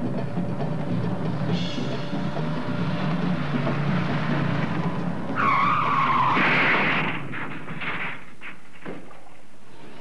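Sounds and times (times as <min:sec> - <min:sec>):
tyres screeching: 0:03.5 - 0:09.0.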